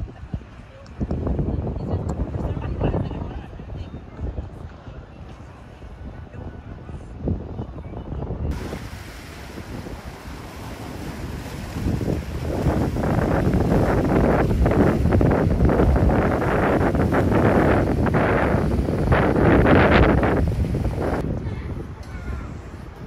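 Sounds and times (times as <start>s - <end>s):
wind buffeting microphone: 0.0s - 23.0s
waves washing: 8.5s - 21.3s.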